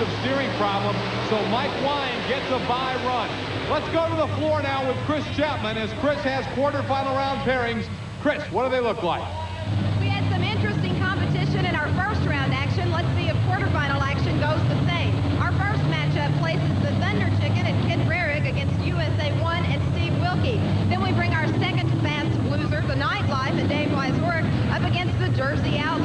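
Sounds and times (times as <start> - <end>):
monster truck engines droning: 0.0 - 26.0
woman speaking into a microphone: 9.9 - 26.0.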